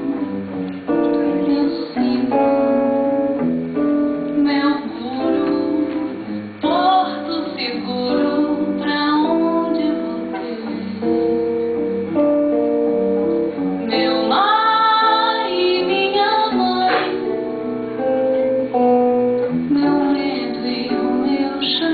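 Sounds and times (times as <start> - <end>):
woman singing: 0.0 - 3.0, 4.1 - 11.6, 13.9 - 17.8, 19.5 - 21.9
acoustic guitar: 0.0 - 21.9.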